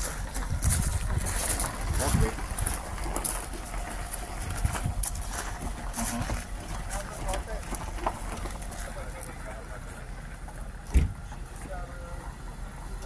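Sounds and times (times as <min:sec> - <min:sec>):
wind buffeting microphone: 0:00.0 - 0:06.9
indistinct voices: 0:00.0 - 0:13.0.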